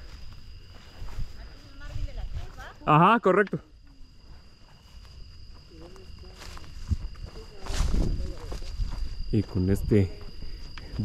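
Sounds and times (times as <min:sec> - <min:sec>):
wind rumbling on microphone: 0:00.0 - 0:02.8, 0:06.2 - 0:11.0
insects trilling: 0:00.0 - 0:11.0.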